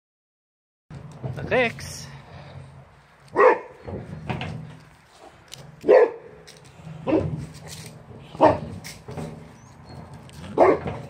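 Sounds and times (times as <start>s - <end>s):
dog barking: 3.4s - 3.7s, 5.8s - 6.3s, 7.0s - 7.4s, 8.4s - 8.7s, 10.6s - 11.0s.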